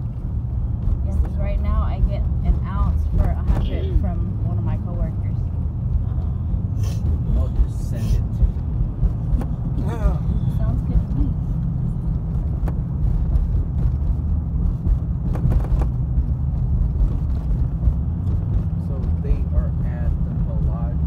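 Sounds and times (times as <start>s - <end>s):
road and engine rumble in car: 0.0s - 21.0s.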